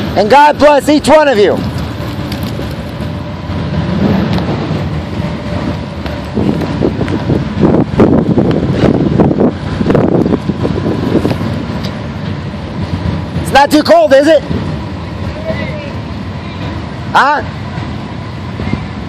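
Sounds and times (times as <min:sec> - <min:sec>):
motorcycle engines running: 0:00.0 - 0:19.0
wind buffeting microphone: 0:01.4 - 0:19.0.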